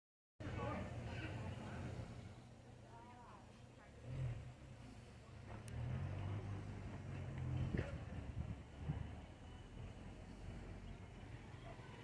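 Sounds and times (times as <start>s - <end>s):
distant street voices: 0.4s - 12.0s.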